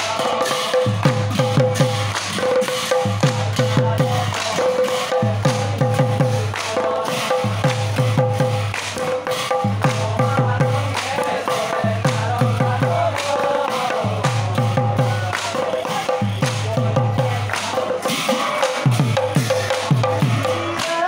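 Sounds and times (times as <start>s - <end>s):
men singing together: 0.0s - 21.0s.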